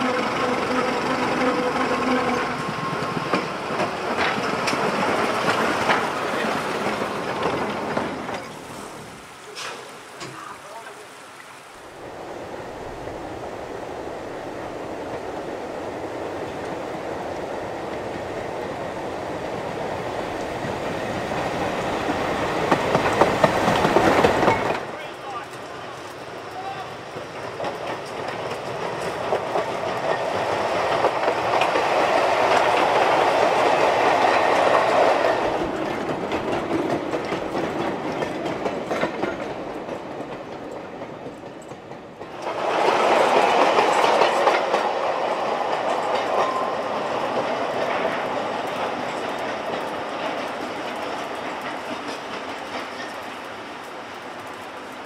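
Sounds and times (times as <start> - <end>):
train wheels rattling over rail joints: 0.0 - 10.5, 13.0 - 55.0.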